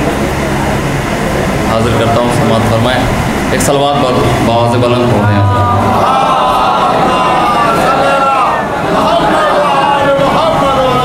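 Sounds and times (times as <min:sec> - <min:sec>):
low hum: 0:00.3 - 0:08.2.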